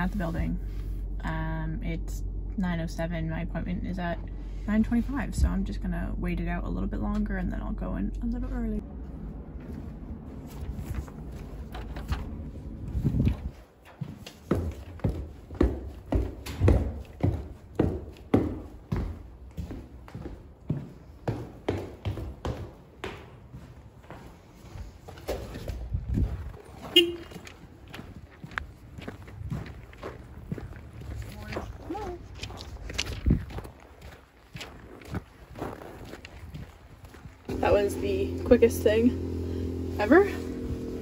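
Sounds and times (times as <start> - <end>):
low rumble: 0.0 - 13.6
boot footsteps on hard floor: 13.1 - 30.7.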